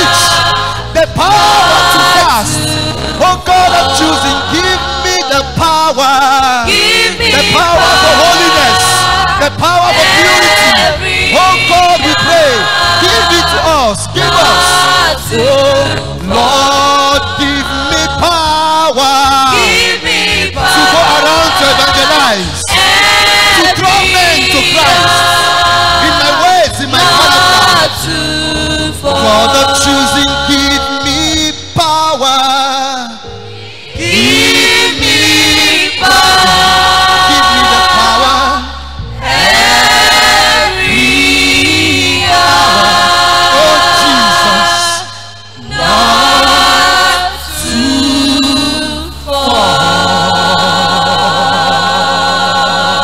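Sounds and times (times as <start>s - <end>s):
youth choir singing: 0.0s - 31.5s, 33.2s - 53.0s.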